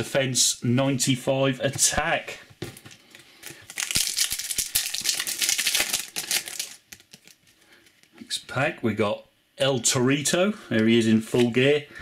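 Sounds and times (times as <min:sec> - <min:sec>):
foil wrapper crinkling and tearing: 0:03.0 - 0:08.1.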